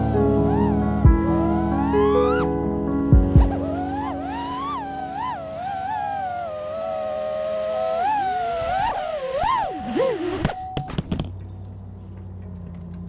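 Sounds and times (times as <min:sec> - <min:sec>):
drone motors whining: 0:00.0 - 0:02.6, 0:03.2 - 0:10.6.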